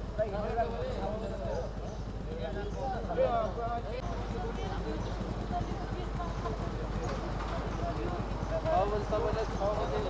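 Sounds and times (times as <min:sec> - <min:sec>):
several voices talking: 0:00.0 - 0:10.0.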